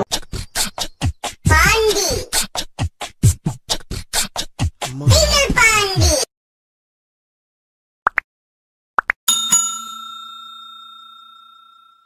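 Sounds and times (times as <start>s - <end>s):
notification bell: 9.3s - 12.0s.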